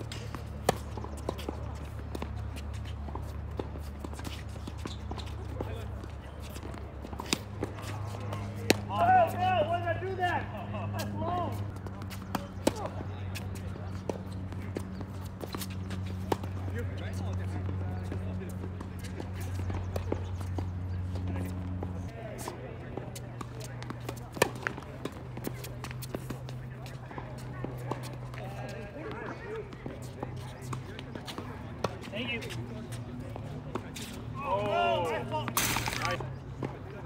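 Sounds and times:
tennis balls struck by rackets: 0.0 - 10.0, 11.0 - 28.5, 29.2 - 36.8
voices calling out: 27.4 - 37.0.

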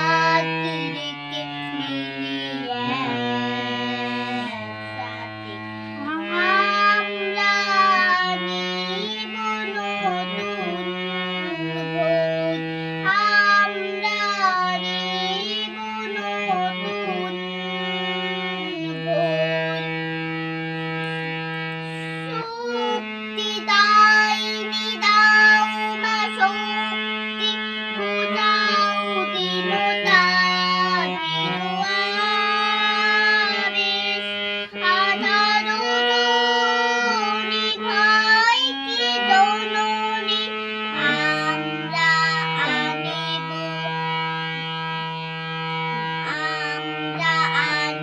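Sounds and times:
child singing: 0.0 - 17.6, 18.4 - 20.0, 20.8 - 48.0
reed harmonium held notes: 0.0 - 48.0.

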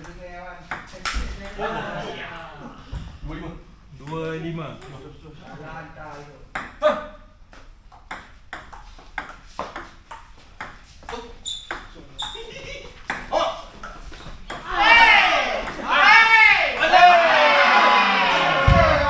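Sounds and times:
players' loud voices: 14.6 - 19.0.

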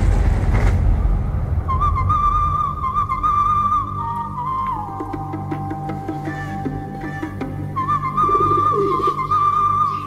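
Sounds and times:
wavering whistled melody: 1.7 - 10.0
pigeon cooing: 8.2 - 10.0.

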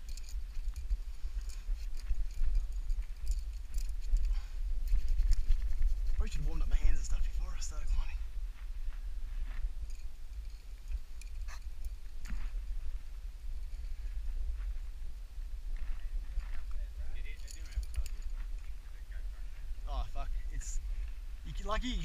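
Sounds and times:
wind rumble on microphone: 0.0 - 22.0.

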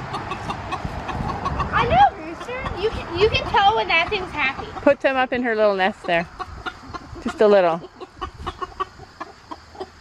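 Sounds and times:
hens clucking: 0.0 - 10.0.

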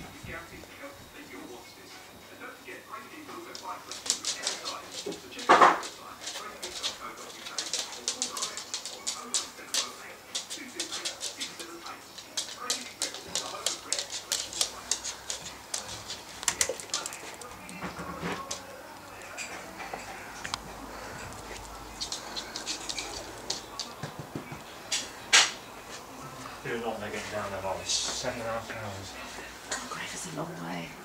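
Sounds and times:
dog claws clicking on wood floor: 3.5 - 25.6.

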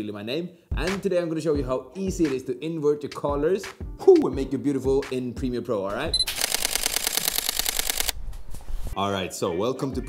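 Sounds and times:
camera shutter clicks: 6.2 - 8.2.

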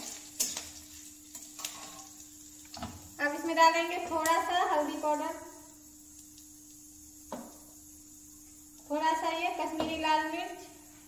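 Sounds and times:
faint steady hum: 0.0 - 11.0
woman speaking: 3.2 - 5.5, 8.9 - 10.8.

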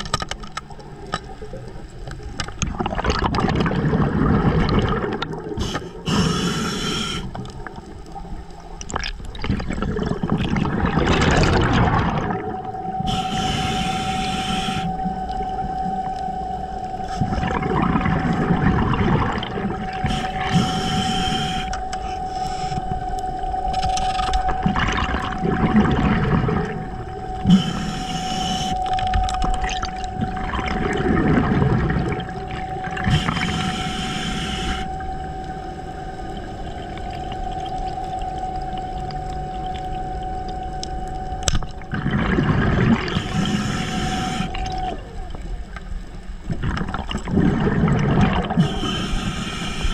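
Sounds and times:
steady whine: 0.0 - 49.9
water rushing and gurgling: 0.0 - 49.9
bursts of hiss: 5.6 - 7.4, 27.5 - 28.8.

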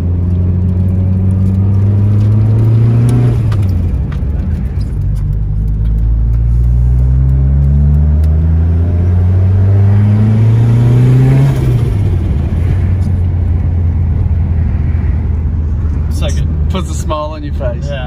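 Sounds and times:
car engine accelerating: 0.0 - 18.0.

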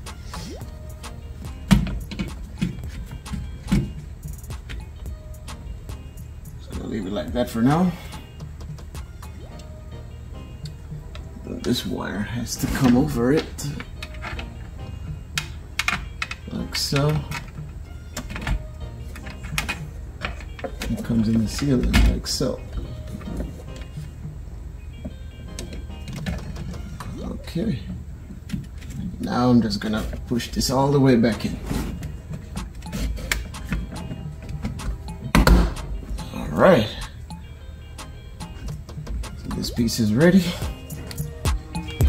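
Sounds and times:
faint background music: 0.0 - 42.0.

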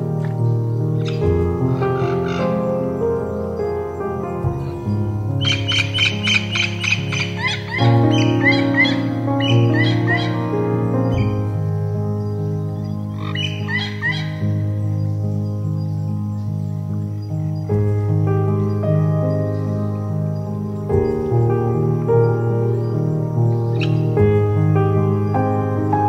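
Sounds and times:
slow piano music: 0.0 - 26.0
bird chirps: 0.2 - 18.0, 22.2 - 24.6.

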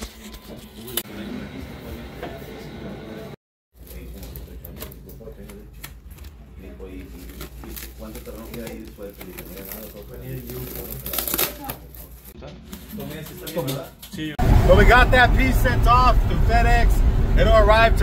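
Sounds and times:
plastic wrap crinkling: 3.8 - 13.8.

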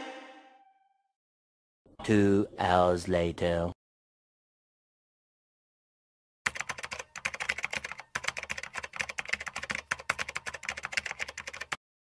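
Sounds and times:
rapid keyboard typing: 6.5 - 11.8.

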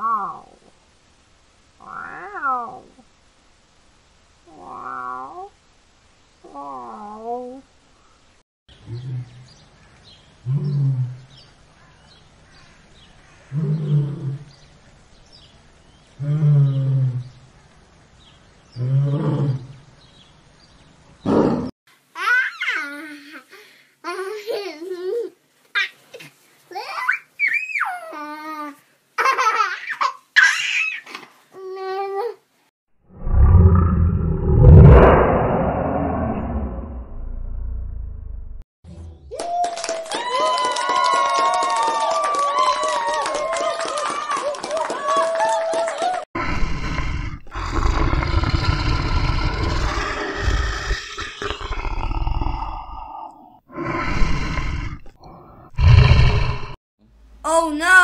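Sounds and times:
lion roaring: 18.8 - 19.8, 21.2 - 21.7, 33.1 - 37.5, 46.4 - 56.8
young voice babbling and squealing: 26.7 - 28.8, 57.5 - 58.0
loud low rumble: 33.1 - 38.6.

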